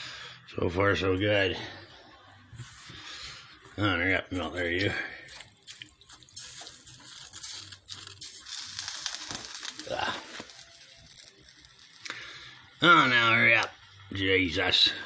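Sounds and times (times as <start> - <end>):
snow melting with soft hiss: 6.2 - 15.0.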